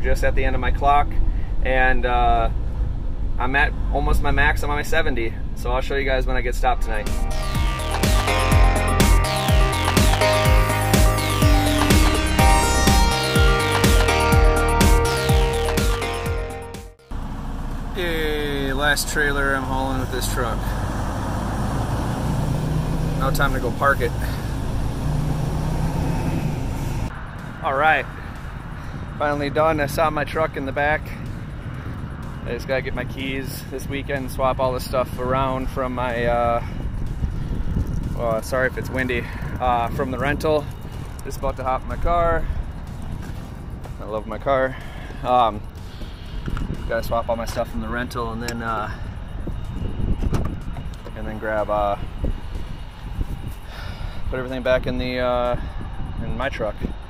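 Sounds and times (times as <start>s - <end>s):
diesel truck engine rumbling: 0.0s - 55.2s
wind buffeting the microphone: 27.4s - 57.0s.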